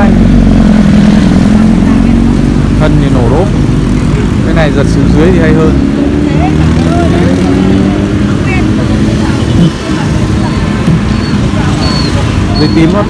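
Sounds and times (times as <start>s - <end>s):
motorbike and road traffic rumble: 0.0s - 13.0s
people talking: 4.2s - 13.0s.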